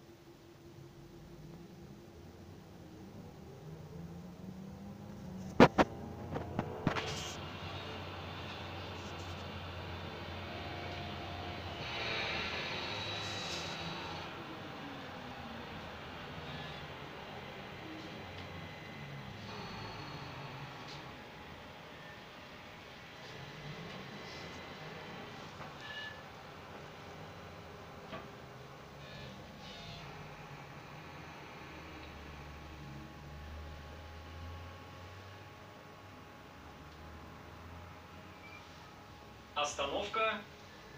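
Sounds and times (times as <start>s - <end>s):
bus engine hum: 0.7s - 22.2s
road noise: 0.9s - 29.0s
hiss: 11.8s - 14.2s.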